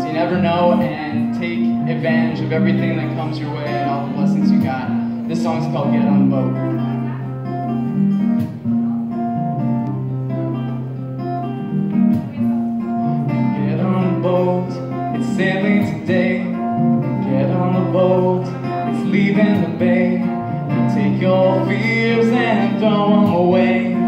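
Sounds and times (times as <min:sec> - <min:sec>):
acoustic guitar strumming: 0:00.0 - 0:24.0.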